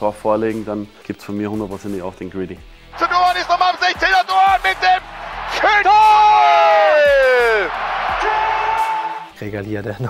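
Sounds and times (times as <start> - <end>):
stadium crowd cheering: 2.9 - 9.4
commentator shouting goal: 3.0 - 9.2.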